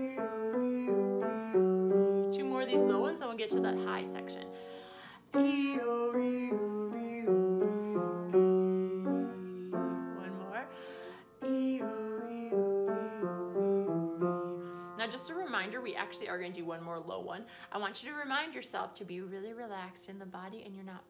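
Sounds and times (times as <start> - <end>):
upright piano playing: 0.0 - 17.3
woman singing vocal warm-up: 0.0 - 20.8.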